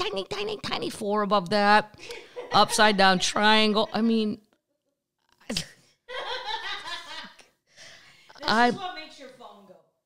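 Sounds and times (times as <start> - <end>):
woman laughing: 2.0 - 4.3, 5.5 - 7.4, 8.3 - 8.9.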